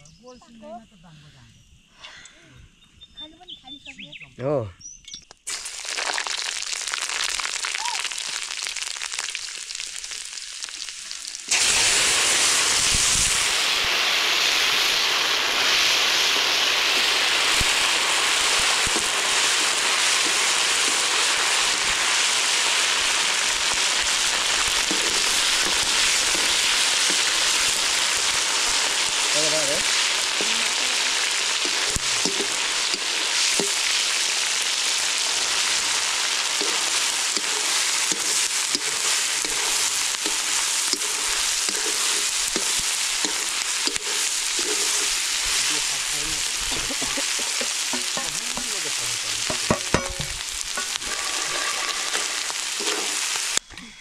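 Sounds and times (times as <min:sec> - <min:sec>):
tomatoes sizzling in hot oil: 0:05.2 - 0:53.6
metal ladle stirring in wok: 0:36.6 - 0:45.6, 0:49.4 - 0:53.5.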